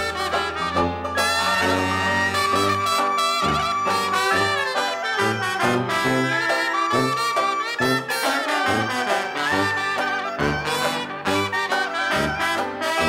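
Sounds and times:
bass line: 0:00.0 - 0:13.0
jazz band playing: 0:00.0 - 0:13.0
trombone: 0:00.0 - 0:13.0.

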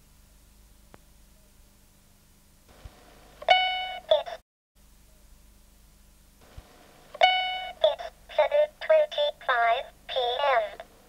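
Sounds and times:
synthetic voice speaking: 0:04.1 - 0:04.4, 0:07.8 - 0:10.8.

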